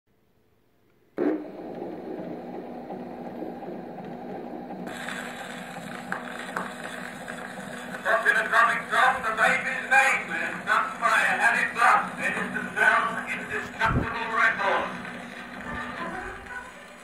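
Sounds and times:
record surface noise: 0:00.9 - 0:17.0
machine running hum: 0:01.2 - 0:17.0.

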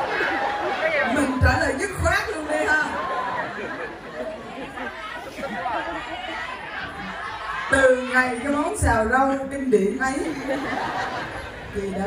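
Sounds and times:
audience chatter: 0:00.0 - 0:12.0
woman talking into a microphone: 0:01.1 - 0:03.0, 0:07.7 - 0:10.5, 0:11.7 - 0:12.0.

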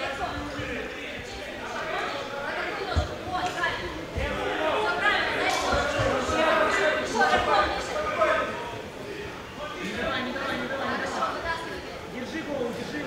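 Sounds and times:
voices calling out in a hall: 0:00.0 - 0:13.0.

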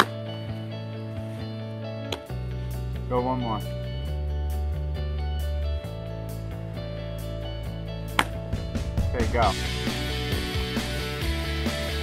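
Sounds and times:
background music: 0:00.0 - 0:12.0
ball smacking into mitt: 0:08.1 - 0:08.4.

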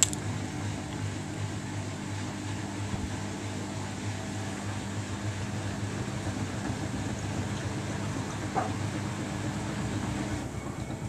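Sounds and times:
washing machine spinning: 0:00.0 - 0:11.0.

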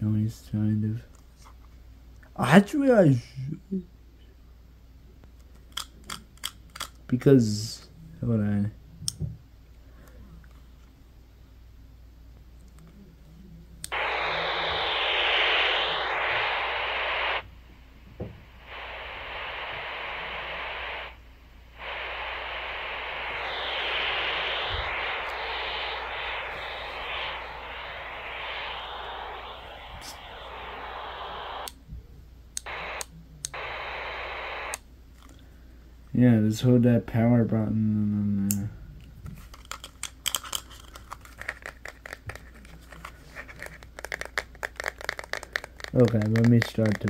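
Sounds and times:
walkie-talkie radio static: 0:13.9 - 0:17.5, 0:18.2 - 0:31.7, 0:32.6 - 0:34.8, 0:44.8 - 0:47.0.

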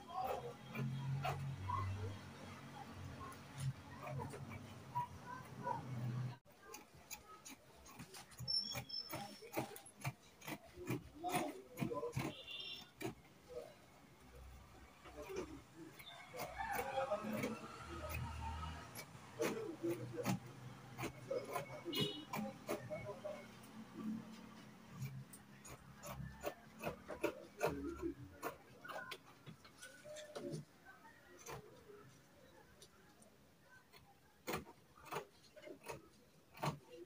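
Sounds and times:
fabric scissors snipping: 0:06.6 - 0:13.2, 0:15.0 - 0:29.2, 0:34.0 - 0:37.0.

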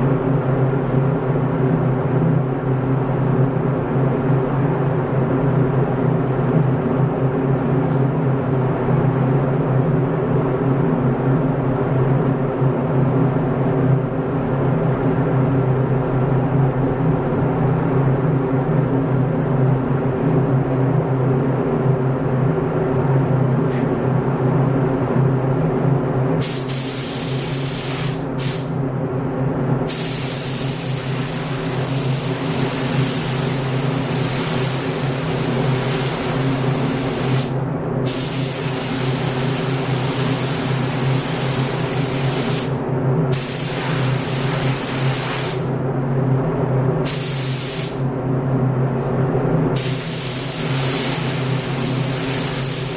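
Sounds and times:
air system low hum: 0:00.0 - 0:52.9
spray gun hissing: 0:26.4 - 0:28.7, 0:29.9 - 0:45.7, 0:47.0 - 0:48.0, 0:49.8 - 0:52.9.

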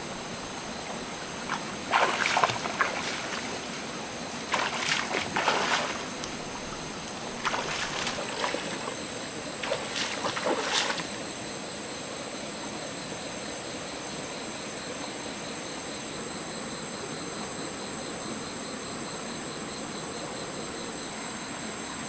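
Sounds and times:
stream flowing: 0:00.0 - 0:12.2
water splashing: 0:00.8 - 0:11.3.

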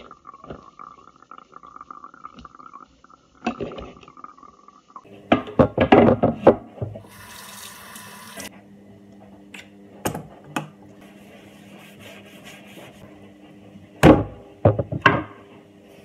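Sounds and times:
kitchen items clattering in sink: 0:05.2 - 0:07.2
kitchen tap running: 0:06.8 - 0:08.5
sponge rubbing on wooden board: 0:11.0 - 0:13.1.

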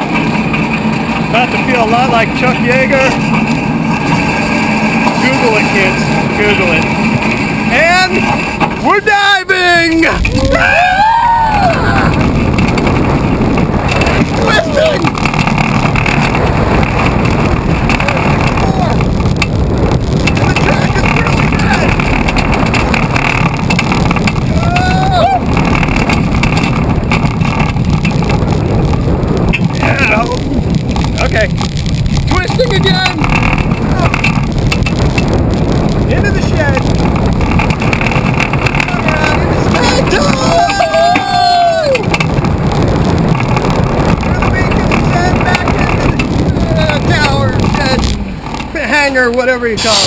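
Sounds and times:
chain lift mechanical drone: 0:00.0 - 0:50.0
roller coaster rushing on track: 0:00.0 - 0:50.0
rider yelling: 0:08.9 - 0:12.3, 0:14.0 - 0:15.1, 0:18.0 - 0:19.2, 0:24.4 - 0:25.6, 0:38.8 - 0:42.2.

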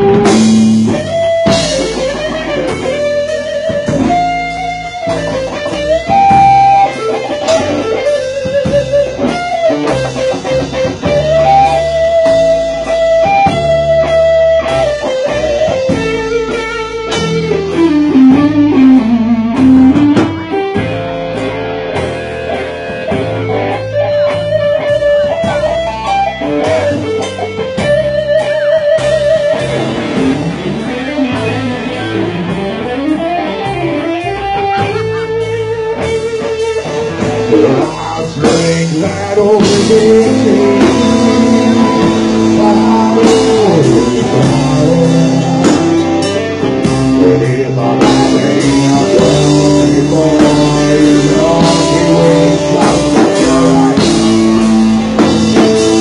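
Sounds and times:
bass and drums: 0:00.0 - 0:56.0
electric guitar lead: 0:00.0 - 0:56.0.

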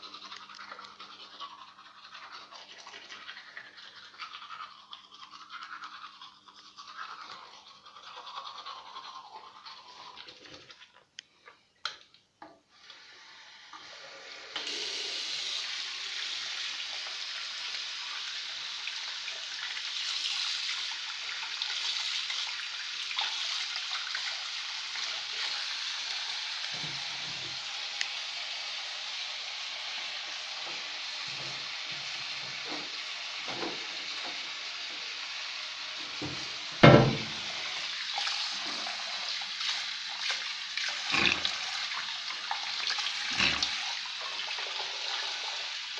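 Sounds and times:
tap water running into sink: 0:13.6 - 0:28.3, 0:30.2 - 0:35.2, 0:36.0 - 0:45.9.

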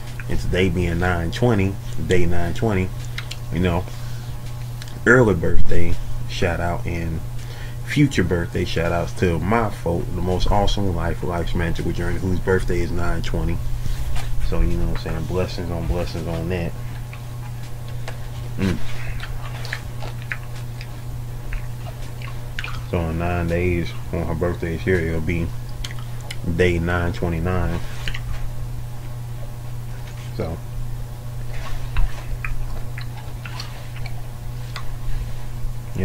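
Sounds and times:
steady low hum: 0:00.0 - 0:36.0
chewing: 0:02.9 - 0:05.0, 0:14.1 - 0:26.5, 0:27.8 - 0:28.5, 0:31.4 - 0:36.0
person humming mm: 0:18.6 - 0:19.2.

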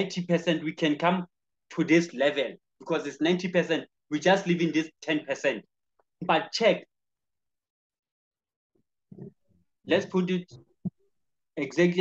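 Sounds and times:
man speaking: 0:09.8 - 0:10.6, 0:11.6 - 0:12.0.

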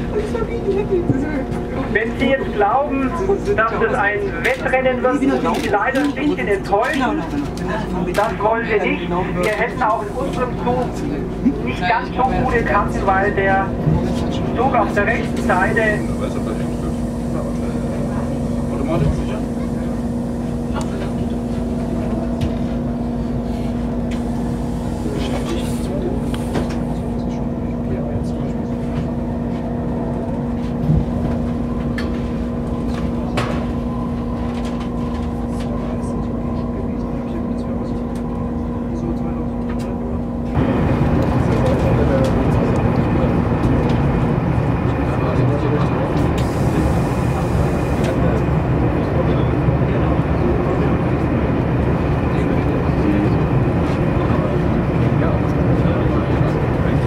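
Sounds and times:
train interior low hum: 0:00.0 - 0:57.0
train rushing and rolling noise: 0:00.0 - 0:57.0.

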